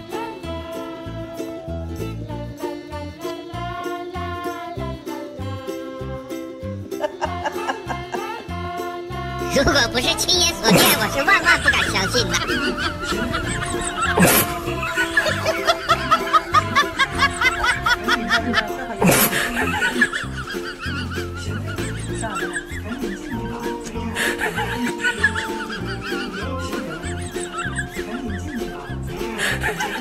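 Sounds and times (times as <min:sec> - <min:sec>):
people laughing: 0:06.8 - 0:08.6, 0:09.4 - 0:30.0.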